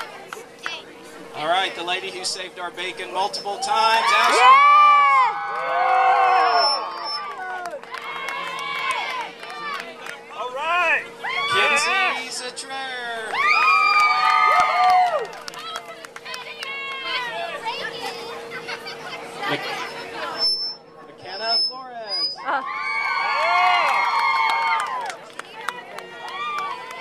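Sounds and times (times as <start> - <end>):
scattered clapping: 0.0 - 0.8, 7.2 - 10.4, 13.2 - 17.3, 23.4 - 27.0
girls cheering and whooping: 4.0 - 9.3, 11.2 - 11.7, 13.4 - 15.3, 22.4 - 25.2.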